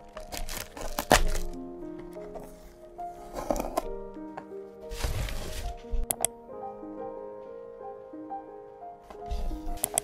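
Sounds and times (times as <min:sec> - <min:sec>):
soft background music: 0:00.0 - 0:10.0
cardboard box being torn open: 0:00.1 - 0:01.6.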